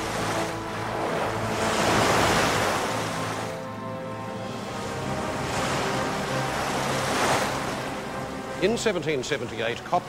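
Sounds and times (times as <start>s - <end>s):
low sustained music notes: 0.0s - 10.0s
surf and churning sea water: 0.0s - 10.0s.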